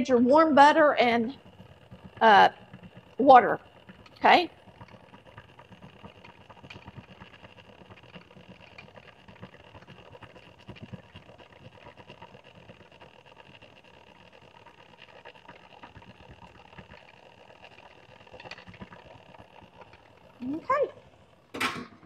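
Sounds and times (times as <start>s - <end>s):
electric stand mixer running: 0.0s - 22.0s.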